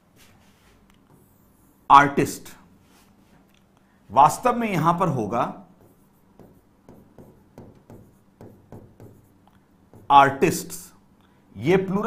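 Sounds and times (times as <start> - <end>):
pen scratching on board: 5.8 - 10.2.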